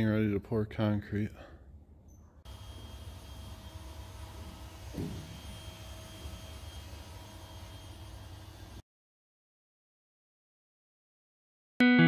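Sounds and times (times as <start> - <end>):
mechanical hum with low rumble: 2.0 - 8.8
faint high whining tones: 2.1 - 8.6.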